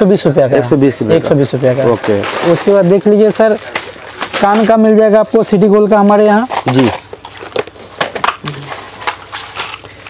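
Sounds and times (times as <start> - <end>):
cellophane crinkling: 1.3 - 10.0
plastic boxes clicking and clattering: 5.7 - 10.0.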